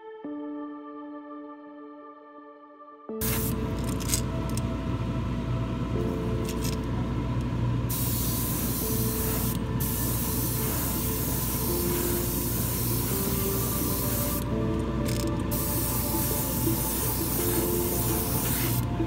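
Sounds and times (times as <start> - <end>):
background music: 0.0 - 19.0
paint spraying hiss: 3.2 - 3.7, 7.9 - 19.0.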